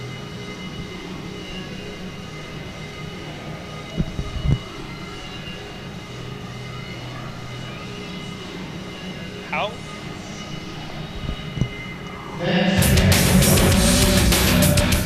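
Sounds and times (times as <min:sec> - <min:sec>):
steady hum: 0:00.0 - 0:15.0
indistinct background voices: 0:03.1 - 0:14.2.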